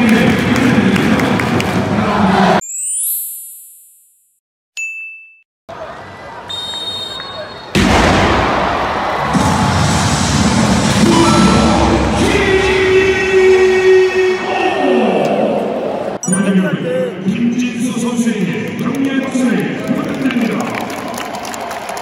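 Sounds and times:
loud stadium crowd noise: 0.0 - 2.6, 5.7 - 22.0
sound effect ding: 11.1 - 12.0, 16.2 - 16.9.

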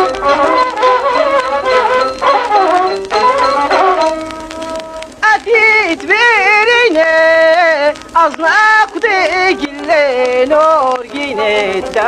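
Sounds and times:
man singing with ornamented pitch: 0.0 - 4.3, 5.2 - 12.0
crackling surface noise: 0.0 - 12.0.

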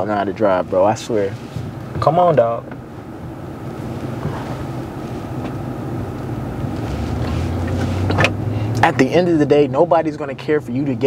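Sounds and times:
car engine accelerating: 0.0 - 11.0.

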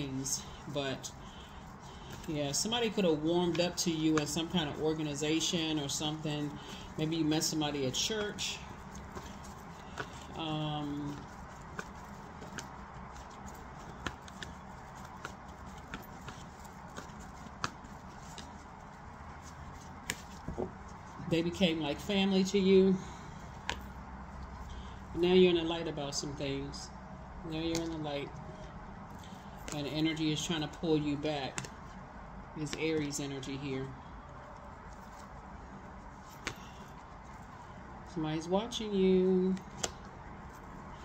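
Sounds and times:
low room hum: 0.0 - 41.0
cards shuffled and clicking: 0.4 - 21.3, 23.5 - 24.6, 29.2 - 32.0, 34.8 - 37.5, 39.5 - 41.0.

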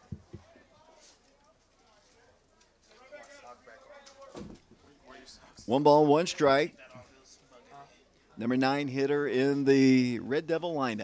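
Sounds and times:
faint distant voices: 0.0 - 9.9.

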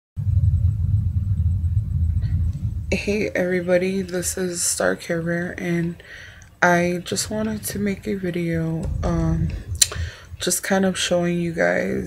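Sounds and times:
low rumble: 0.2 - 6.0, 6.8 - 11.1.

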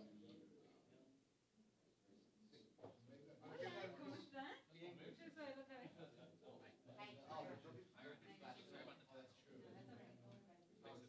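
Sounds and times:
faint indistinct conversation: 0.0 - 11.0.

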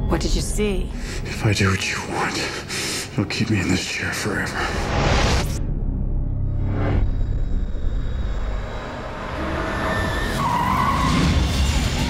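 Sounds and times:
music: 0.0 - 12.0
deep low rumble: 4.6 - 9.4
car tires squealing: 9.8 - 11.7.

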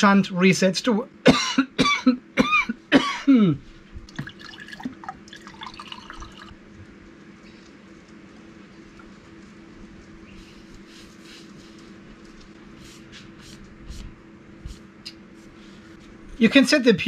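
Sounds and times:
man coughing: 1.2 - 3.7
water poured into a glass: 4.1 - 6.6.

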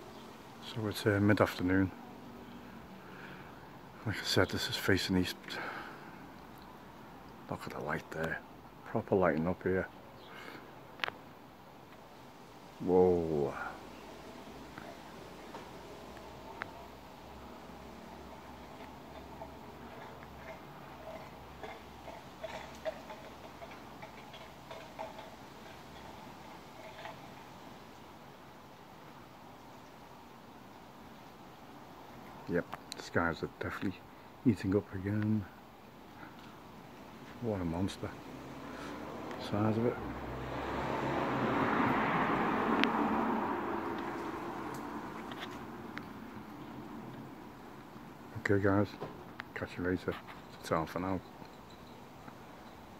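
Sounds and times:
vehicle passing: 12.2 - 28.7, 36.1 - 52.9
faint small ticks and chirps: 13.8 - 33.0, 49.3 - 52.9.

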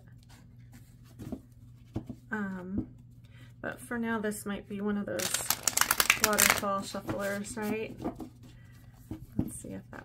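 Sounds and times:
cards rustling and tapping: 5.2 - 8.3.

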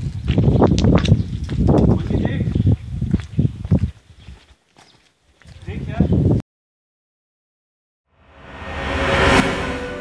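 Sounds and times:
footsteps on stone: 0.0 - 5.8.

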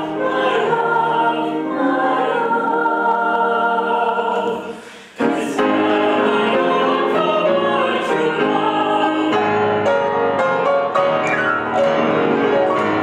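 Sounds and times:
girls' choir singing chords: 0.0 - 10.4.

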